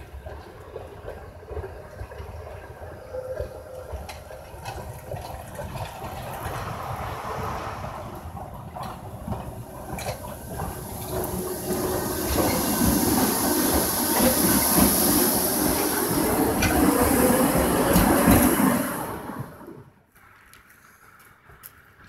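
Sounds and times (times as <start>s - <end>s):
tram wheels rumbling on rails: 0.0s - 22.0s.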